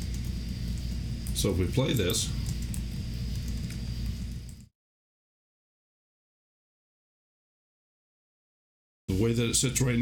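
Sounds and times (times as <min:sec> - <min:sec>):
low hum and hiss: 0:00.0 - 0:04.7, 0:09.1 - 0:10.0.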